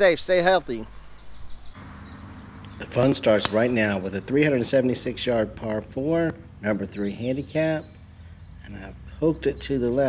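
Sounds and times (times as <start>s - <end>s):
faint steady low hum: 0.0s - 10.0s
man speaking: 2.8s - 7.8s.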